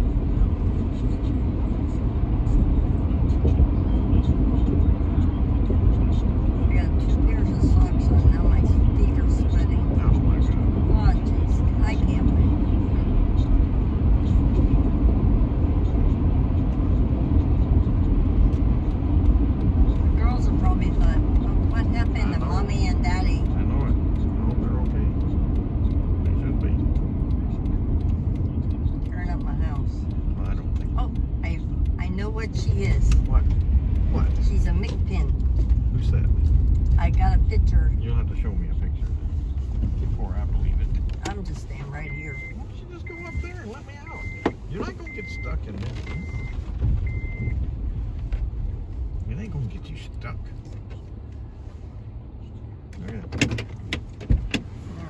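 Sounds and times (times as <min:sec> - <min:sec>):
car road noise rumble: 0:00.0 - 0:55.0.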